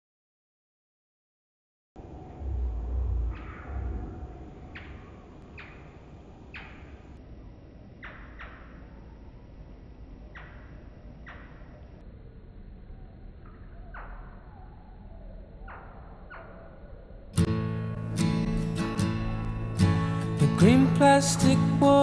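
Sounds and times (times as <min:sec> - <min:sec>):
steady low background noise: 0:02.0 - 0:22.0.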